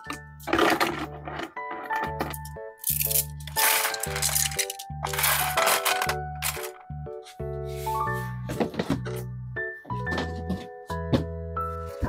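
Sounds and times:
knitting needles clattering into box: 0.0s - 6.8s.

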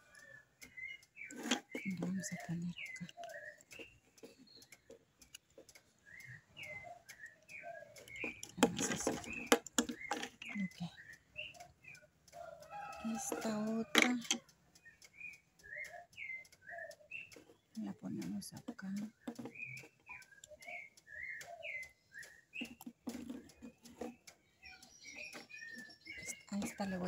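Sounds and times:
small birds chirping: 0.0s - 27.0s
rustling clatter of handling: 1.2s - 5.8s, 8.0s - 10.6s, 22.5s - 24.4s.

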